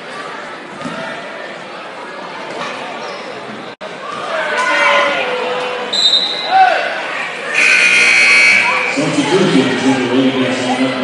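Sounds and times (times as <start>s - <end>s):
crowd voices: 0.0s - 11.0s
referee's whistle: 5.9s - 6.6s, 7.6s - 9.0s.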